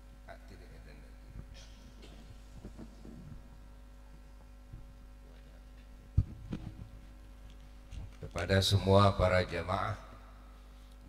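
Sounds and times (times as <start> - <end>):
microphone handling thumps: 1.3 - 3.6, 4.7 - 5.0, 5.9 - 7.1.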